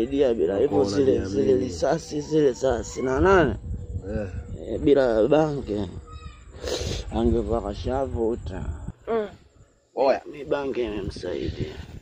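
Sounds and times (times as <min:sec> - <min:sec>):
hissing breath: 0:06.5 - 0:07.1.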